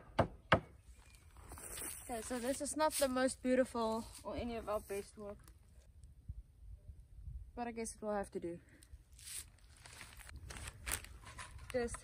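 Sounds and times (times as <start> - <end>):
hammer striking nail into wood: 0.0 - 0.7.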